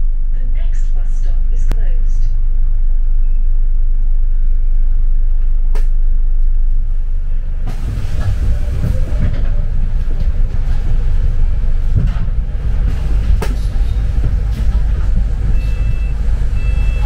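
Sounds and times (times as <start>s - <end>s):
bus engine and road rumble: 0.0s - 17.0s.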